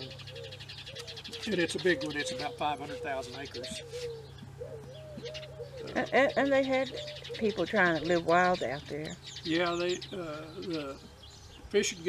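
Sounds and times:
bird cooing faintly: 0.0s - 11.1s.

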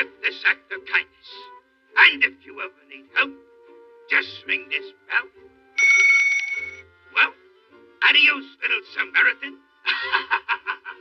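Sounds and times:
small handbell ringing rapidly: 5.8s - 6.8s.

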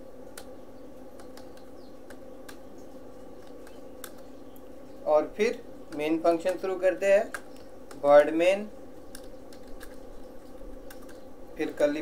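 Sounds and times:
faint steady hum: 0.0s - 12.0s
keyboard keystrokes clicking: 9.1s - 10.0s.

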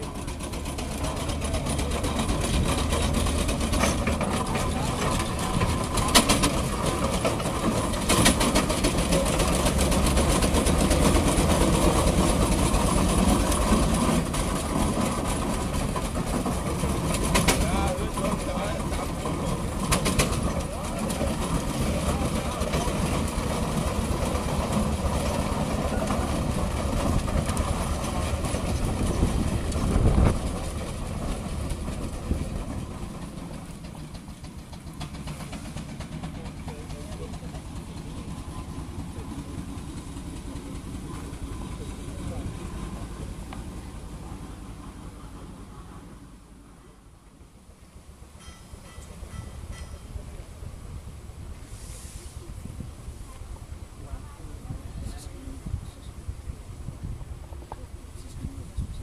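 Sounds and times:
steam engine running: 0.0s - 46.3s.

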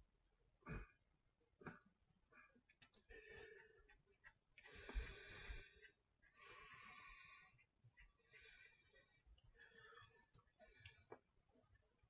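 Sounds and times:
man breathing: 4.6s - 11.1s.

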